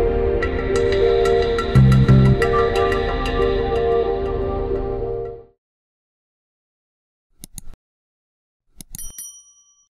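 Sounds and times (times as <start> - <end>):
bright bell ding: 9.0 - 9.9.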